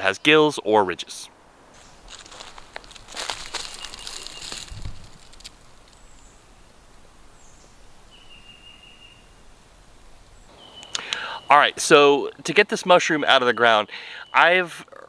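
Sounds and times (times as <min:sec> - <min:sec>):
footsteps crunching in dry leaves: 0:01.7 - 0:06.7.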